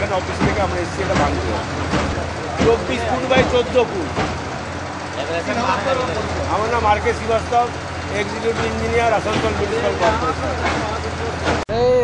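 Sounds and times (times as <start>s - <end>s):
low engine hum: 0.0s - 12.0s
other voices: 0.0s - 12.0s
man talking: 5.1s - 11.9s.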